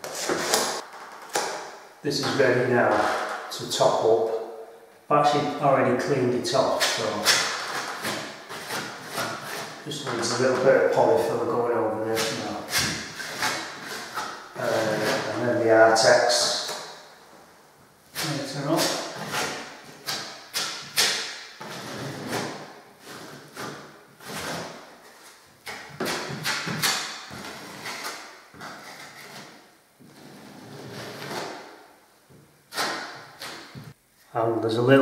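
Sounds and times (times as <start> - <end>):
filling knife scraping plaster: 6.5 - 10.7, 12.1 - 15.4, 18.1 - 24.8.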